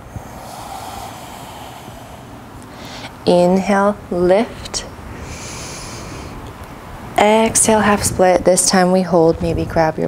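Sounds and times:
person exhaling: 0.0s - 3.6s.

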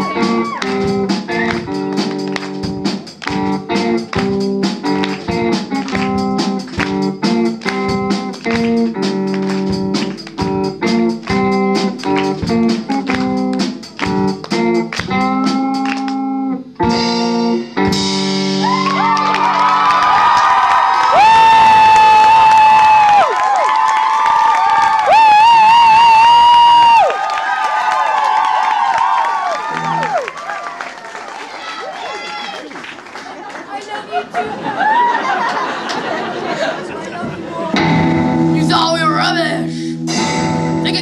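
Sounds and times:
crowd cheering and applause: 0.0s - 16.3s, 18.1s - 38.2s
electric guitar riff: 0.0s - 19.7s, 29.6s - 30.2s, 37.7s - 41.0s
drums: 0.0s - 33.4s, 34.5s - 41.0s.

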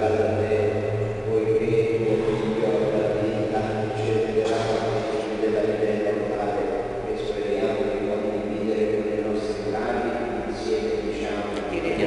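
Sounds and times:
person chanting: 0.0s - 12.0s
steady low hum: 0.0s - 12.0s.

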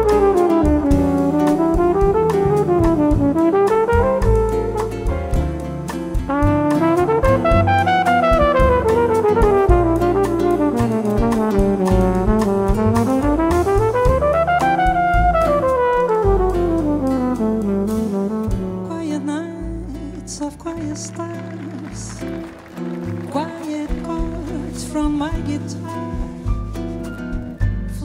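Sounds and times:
flugelhorn solo: 0.0s - 5.0s, 6.3s - 18.6s
drums: 0.0s - 28.0s
piano: 0.0s - 28.0s
upright bass: 0.0s - 28.0s.

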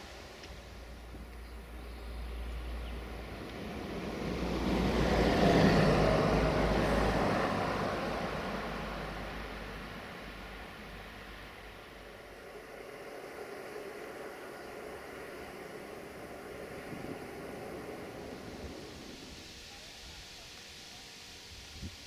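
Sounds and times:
vehicle passing by: 0.0s - 19.6s.

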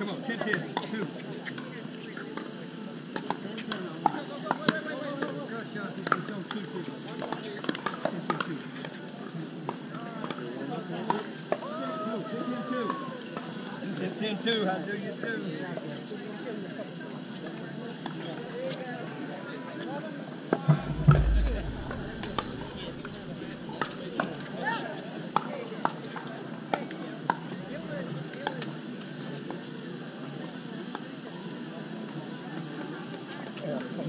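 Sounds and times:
low thump: 20.7s - 23.8s.

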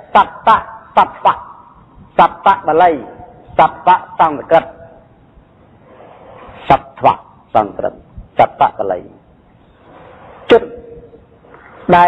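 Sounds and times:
man preaching: 0.0s - 5.1s, 6.6s - 9.2s, 10.5s - 11.0s.

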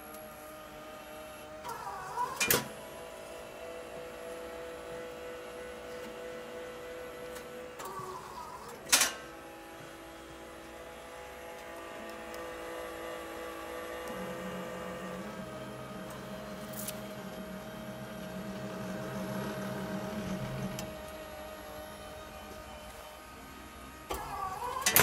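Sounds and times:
laminator motor hum: 0.0s - 25.0s.

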